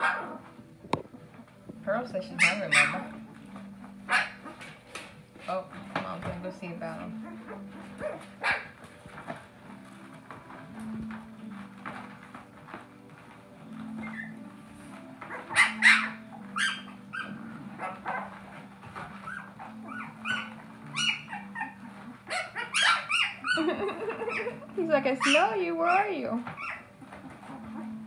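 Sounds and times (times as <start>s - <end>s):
puppies whimpering and squealing: 2.3s - 4.9s, 6.9s - 28.0s.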